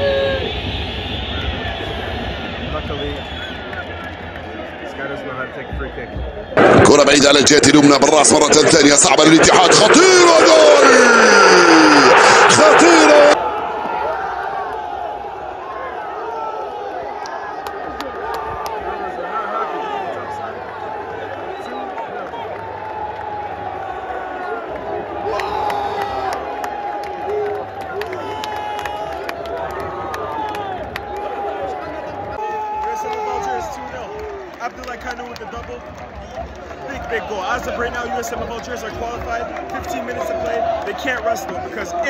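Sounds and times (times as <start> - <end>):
stadium crowd cheering and chanting: 0.0 - 42.0.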